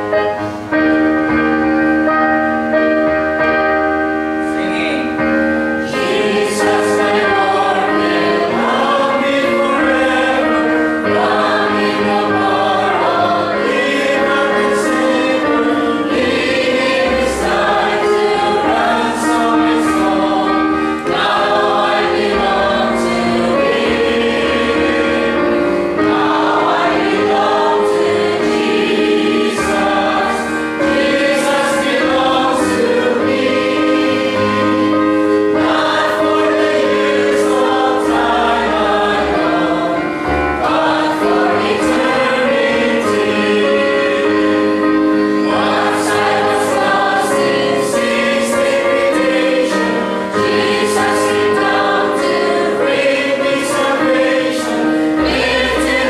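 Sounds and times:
congregation singing a hymn: 0.0 - 56.0
electronic keyboard accompaniment: 0.0 - 56.0.

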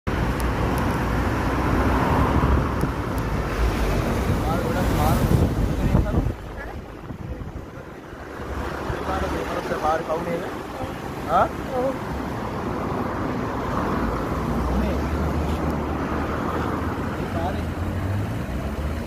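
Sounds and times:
wind rushing over microphone: 0.1 - 10.0
motorcycle road noise: 0.1 - 19.0.

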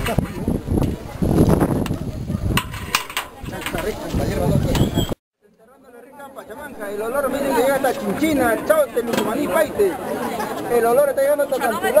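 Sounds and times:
voices talking: 0.0 - 5.2, 5.8 - 12.0.

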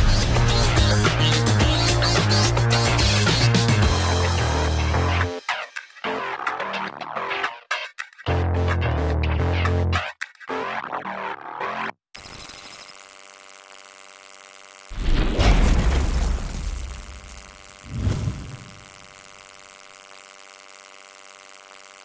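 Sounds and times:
steady hum: 14.9 - 19.6.

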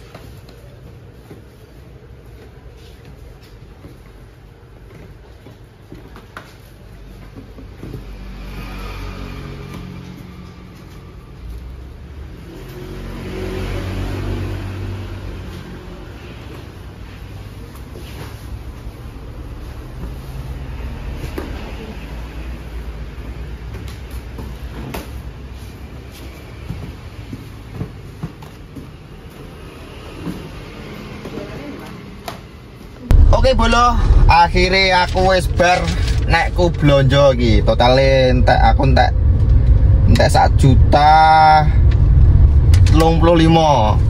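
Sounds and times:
steady low rumble: 33.1 - 44.0
vehicle engine running: 33.1 - 44.0.

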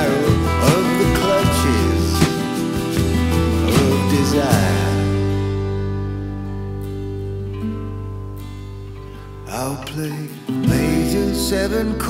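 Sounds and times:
bending melody line: 0.0 - 8.9
acoustic guitar strummed: 0.0 - 12.0.

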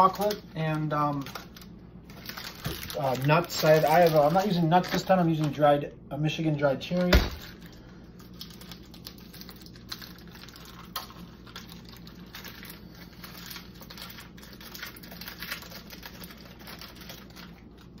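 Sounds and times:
plastic packet crinkling: 0.0 - 5.7, 6.8 - 18.0
steady low hum: 0.0 - 18.0.

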